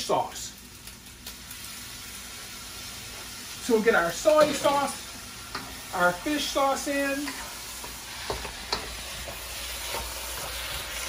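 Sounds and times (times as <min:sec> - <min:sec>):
rice sizzling in a wok: 0:00.0 - 0:11.0.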